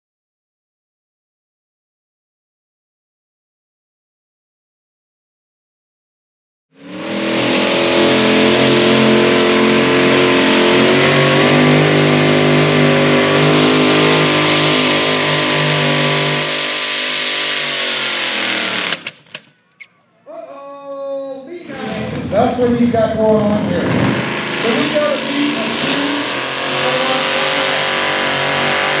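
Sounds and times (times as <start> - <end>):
engine running at high revs: 6.7 - 19.3, 21.8 - 29.0.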